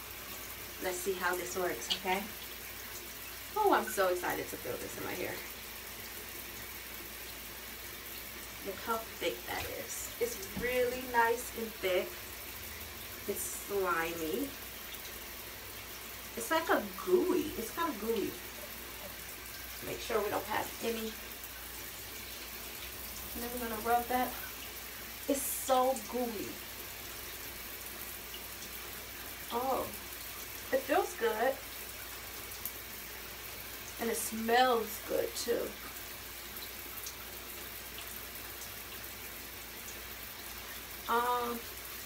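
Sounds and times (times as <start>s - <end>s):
shower water running: 0.0s - 42.0s.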